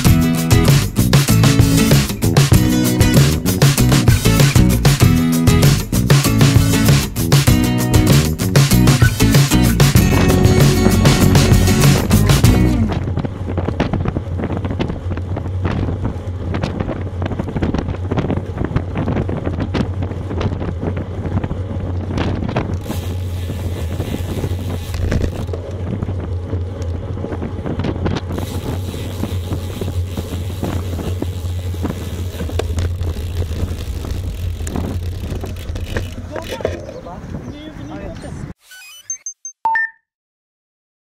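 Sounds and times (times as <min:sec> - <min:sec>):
bike tyres rumbling on asphalt: 0:00.0 - 0:38.5
wind buffeting microphone: 0:09.8 - 0:38.5.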